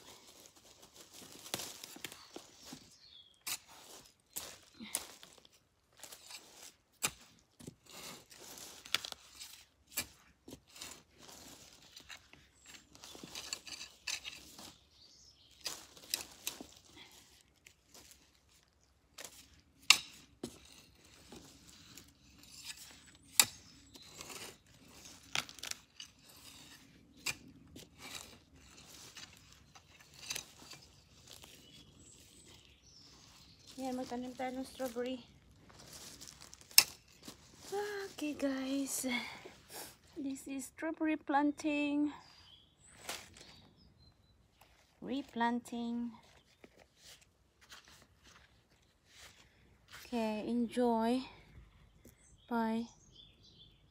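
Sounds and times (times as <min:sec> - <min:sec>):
rustling and crunching handling: 0:00.0 - 0:40.1, 0:42.8 - 0:50.2.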